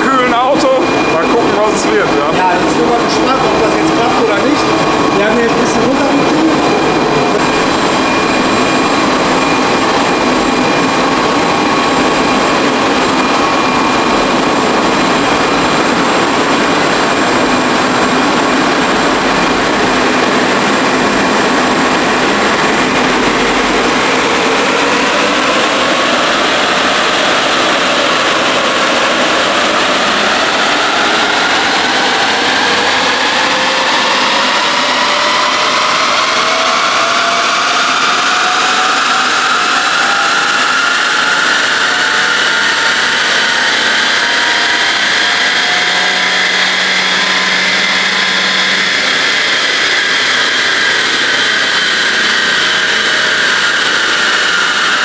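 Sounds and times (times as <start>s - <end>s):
steady rushing noise: 0.0s - 55.0s.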